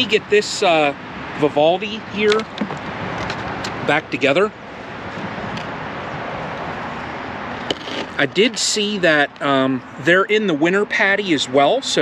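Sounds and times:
steady outdoor rushing noise: 0:00.0 - 0:12.0.

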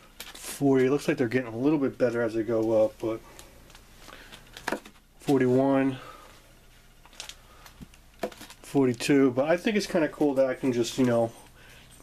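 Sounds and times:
comic book handling noise: 0:00.0 - 0:01.1, 0:02.5 - 0:05.6, 0:06.7 - 0:11.2
paper rustle and tap: 0:03.4 - 0:05.4, 0:07.0 - 0:09.0.

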